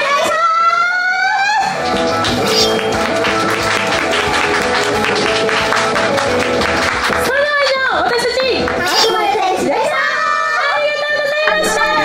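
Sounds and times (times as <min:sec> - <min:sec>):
backing music: 0:01.6 - 0:07.4, 0:11.5 - 0:12.0.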